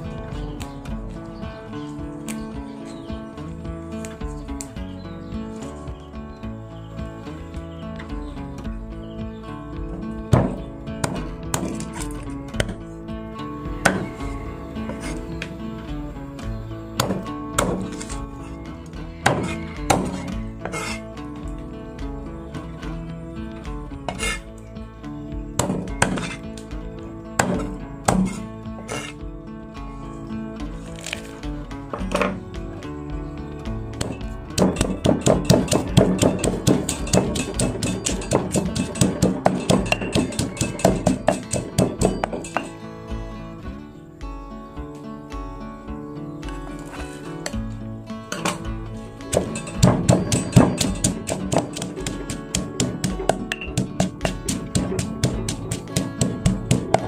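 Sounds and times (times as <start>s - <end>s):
background music: 0.0s - 57.0s
cleaver chopping on wooden board: 10.3s - 12.8s, 13.8s - 14.2s, 17.0s - 18.1s, 19.2s - 21.0s, 25.6s - 26.4s, 27.4s - 29.1s, 34.0s - 42.7s, 49.3s - 57.0s
pestle pounding in mortar: 10.3s - 12.8s, 13.8s - 14.3s, 17.0s - 18.1s, 19.2s - 20.8s, 25.6s - 26.4s, 27.4s - 28.4s, 34.0s - 42.7s, 49.3s - 57.0s.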